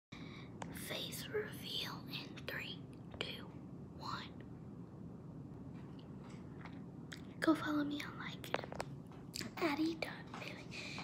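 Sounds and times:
girl whispering: 0.7 - 4.4.

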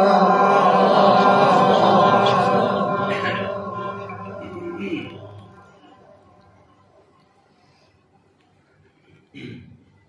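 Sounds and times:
man chanting melodically: 0.0 - 5.8.

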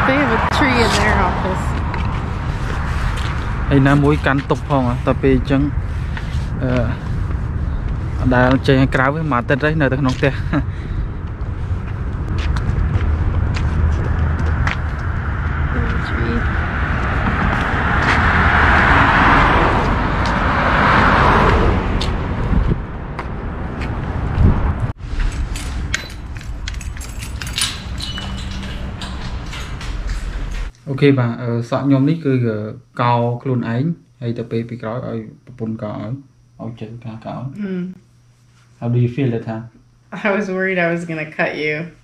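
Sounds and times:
car passing: 0.0 - 25.0
steady low rumble: 0.0 - 37.5.

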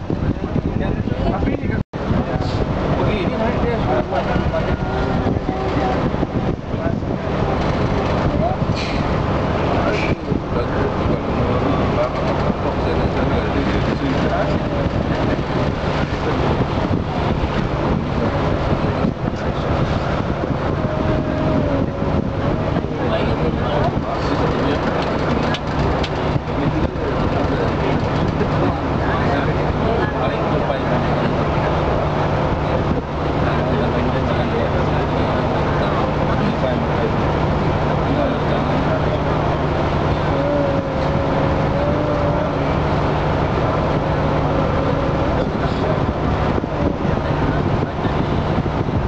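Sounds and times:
ferry engine drone: 0.0 - 49.0.

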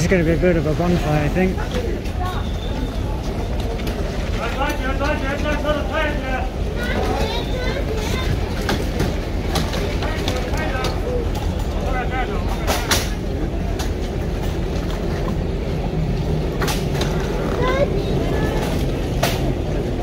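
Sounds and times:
crowd chattering: 0.0 - 20.0.

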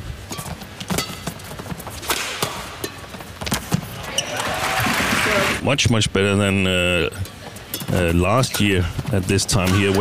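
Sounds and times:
racket hitting shuttlecock: 0.3 - 1.4, 2.0 - 3.8
footsteps on court: 0.3 - 5.1.

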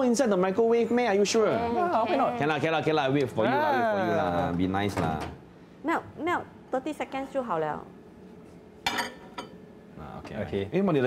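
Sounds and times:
bowls clinking: 8.8 - 9.6.

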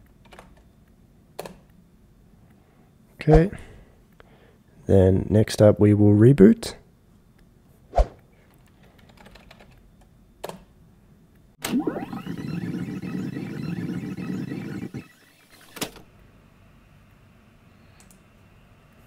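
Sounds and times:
computer keyboard clicks: 0.0 - 0.6, 8.5 - 9.8
rising pitched tone: 11.6 - 15.5.

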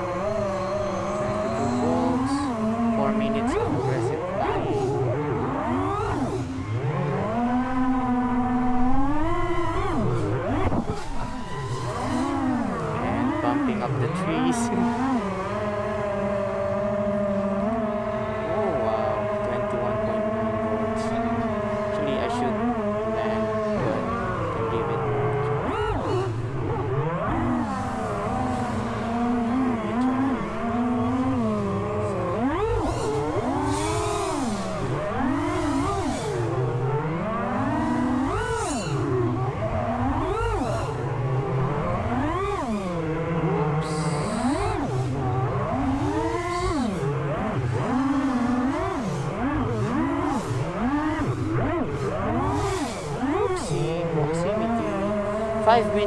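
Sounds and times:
drone motors and propellers whining: 0.0 - 56.0.

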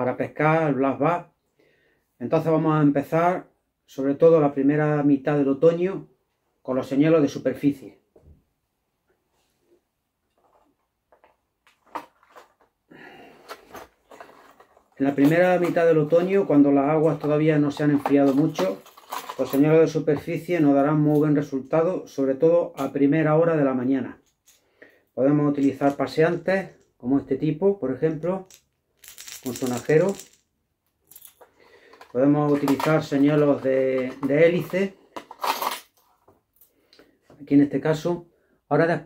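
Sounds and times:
plastic box rustling and scraping: 10.3 - 16.5, 17.2 - 19.7, 31.9 - 36.3
person speaking: 14.9 - 24.2, 25.2 - 30.4, 32.1 - 35.1
plastic box clicks and rustle: 17.1 - 19.6, 31.9 - 35.8.

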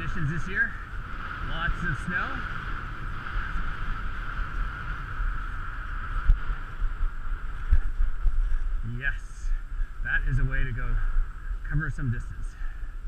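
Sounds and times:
skis gliding on snow: 0.0 - 12.4
wind rumbling on microphone: 0.0 - 13.0.

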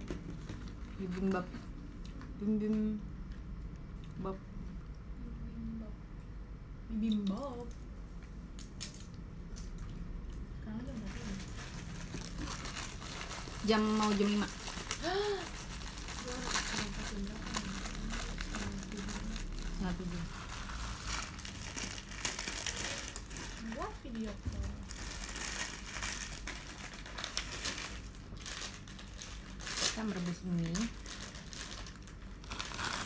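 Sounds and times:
food packaging rustling: 11.0 - 33.0.

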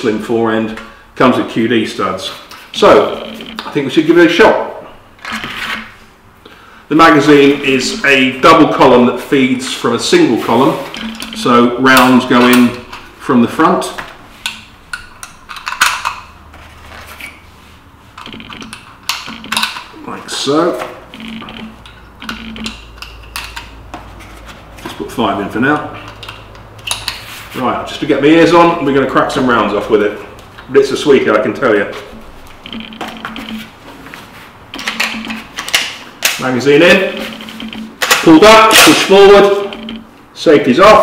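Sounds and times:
handling clicks and rustles: 18.1 - 20.0, 31.9 - 40.2.

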